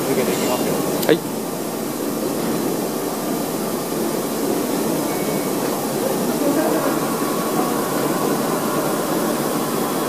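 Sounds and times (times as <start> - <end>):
boring machine running: 0.0 - 10.0.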